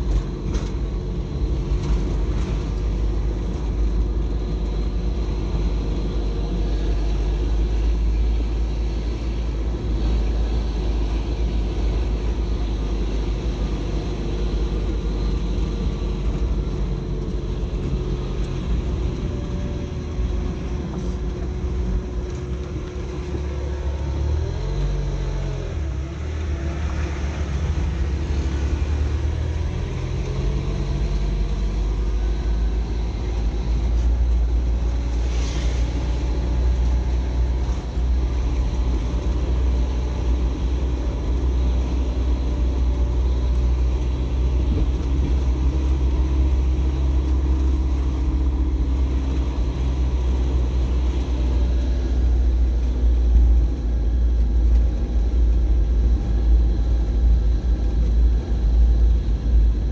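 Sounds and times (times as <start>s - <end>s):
car engine: 0.0s - 59.9s
tyres rumbling on paving: 0.0s - 59.9s.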